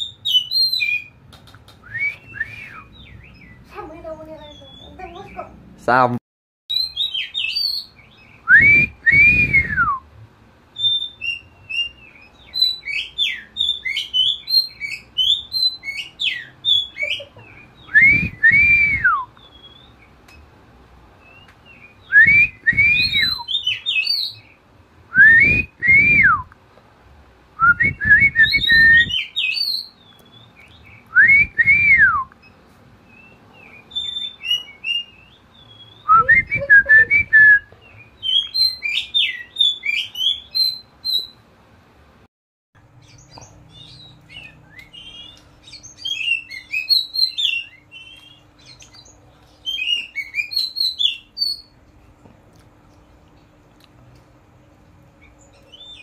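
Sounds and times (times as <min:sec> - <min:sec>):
magpie-robin whistling song: 0:00.0 - 0:01.2, 0:01.8 - 0:03.7, 0:04.4 - 0:05.5, 0:06.7 - 0:10.0, 0:10.8 - 0:20.4, 0:21.2 - 0:26.5, 0:27.6 - 0:41.4, 0:43.0 - 0:51.7, 0:55.2 - 0:56.0
high bird chirps and twitters: 0:00.0 - 0:05.6, 0:06.7 - 0:08.5, 0:10.8 - 0:18.4, 0:19.3 - 0:20.5, 0:21.2 - 0:24.6, 0:28.4 - 0:31.2, 0:32.4 - 0:36.7, 0:37.8 - 0:41.4, 0:43.0 - 0:51.8, 0:55.2 - 0:56.0
faint steady hum: 0:07.3 - 0:56.0.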